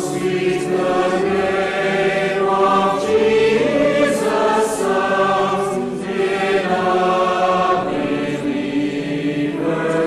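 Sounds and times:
choir singing slowly: 0:00.0 - 0:10.0.

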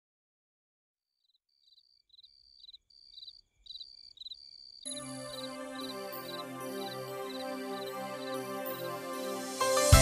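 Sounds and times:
faint insect chirping: 0:01.2 - 0:09.4.

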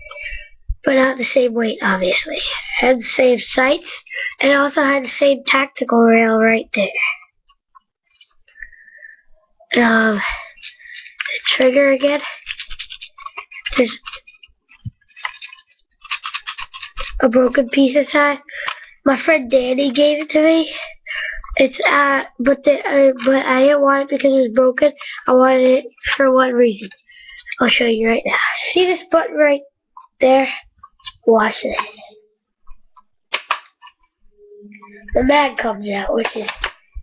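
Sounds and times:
plastic toy scraping: 0:10.5 - 0:18.8
sharp plastic clicks: 0:32.7 - 0:34.1, 0:36.2 - 0:36.9.

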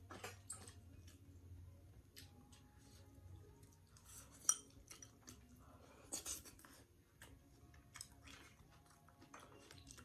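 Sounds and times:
chopsticks clinking on a bowl: 0:04.0 - 0:05.4.

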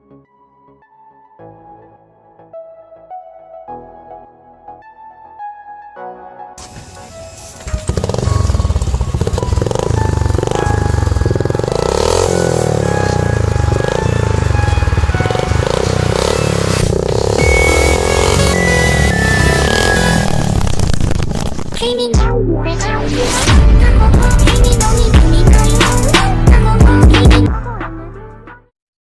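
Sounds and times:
electronic background music: 0:00.0 - 0:28.5
motorcycle engine running loudly: 0:06.6 - 0:21.8.

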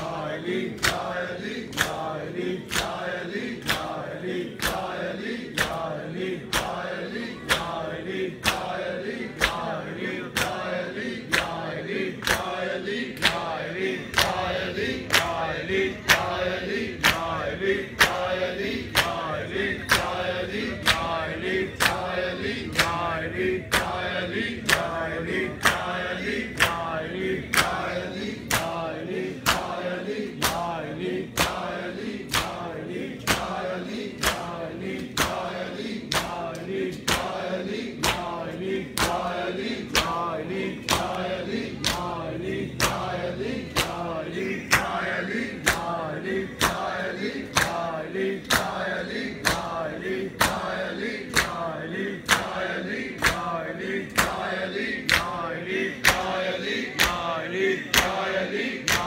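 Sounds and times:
male voices chanting: 0:00.0 - 0:59.0
men slapping chests in unison: 0:00.0 - 0:59.0.

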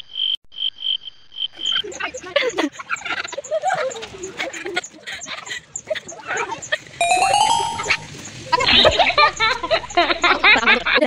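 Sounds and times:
children's voices: 0:01.6 - 0:10.0
chime sound effect: 0:07.0 - 0:08.4.

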